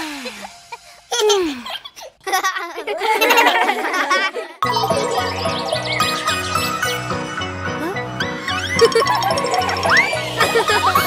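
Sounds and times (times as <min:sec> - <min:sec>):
childlike giggling: 0:01.1 - 0:04.6, 0:08.5 - 0:11.0
cartoon voice laughing: 0:08.5 - 0:11.0.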